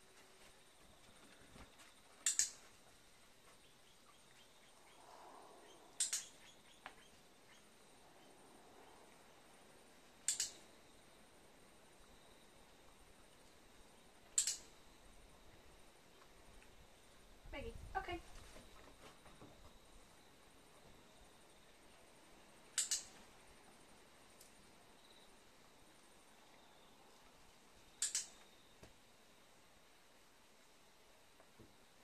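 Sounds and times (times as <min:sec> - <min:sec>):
dog-training clicker clicks: 0:02.2 - 0:02.6, 0:06.0 - 0:06.3, 0:10.3 - 0:10.6, 0:14.4 - 0:14.6, 0:22.8 - 0:23.1, 0:28.0 - 0:28.4
high-pitched double click: 0:10.3 - 0:10.6.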